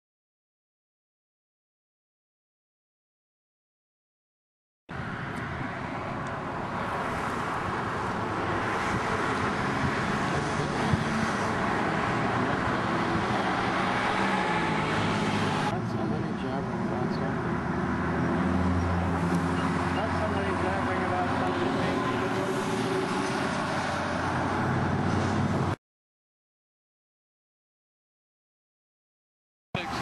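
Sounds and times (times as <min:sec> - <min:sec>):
cars passing on busy street: 0:04.9 - 0:25.8, 0:29.8 - 0:30.0.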